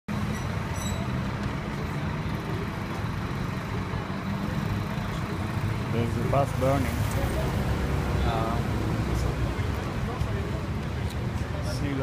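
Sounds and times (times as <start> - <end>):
vehicle engines running: 0.1 - 12.0.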